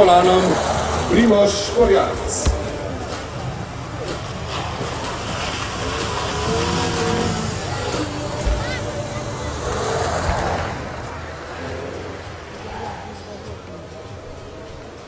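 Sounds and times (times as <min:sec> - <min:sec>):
car engine revving hard: 0:00.0 - 0:13.5.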